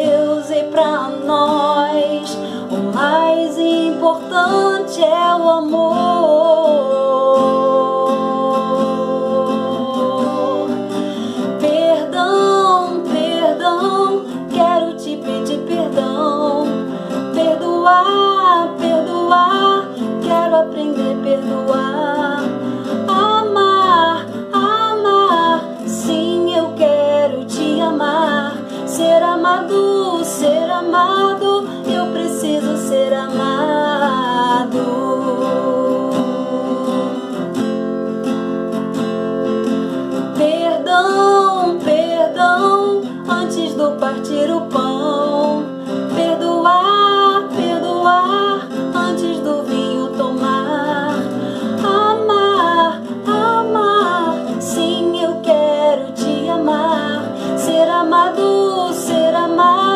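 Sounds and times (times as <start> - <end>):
woman singing worship song: 0.0 - 37.5, 40.3 - 59.9
strummed acoustic guitar: 0.0 - 59.9.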